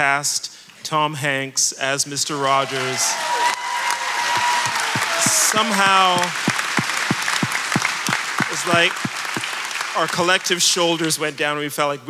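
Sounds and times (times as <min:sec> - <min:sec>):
audience applauding: 0:02.6 - 0:11.2
person clapping nearby: 0:04.3 - 0:10.0.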